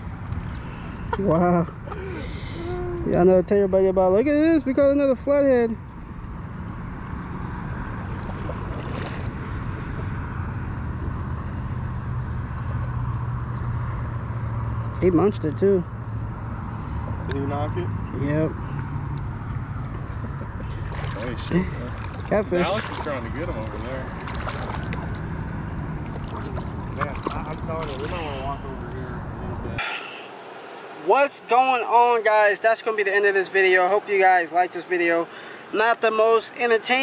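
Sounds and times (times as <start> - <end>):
distant engine drone: 0.0 - 37.0
outdoor background noise: 0.0 - 37.0
river water swirling and lapping: 6.0 - 12.2, 18.8 - 29.0, 29.8 - 37.0.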